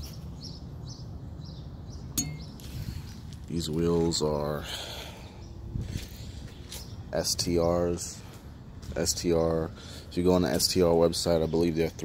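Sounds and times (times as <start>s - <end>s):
bird chirps: 0.0s - 2.9s.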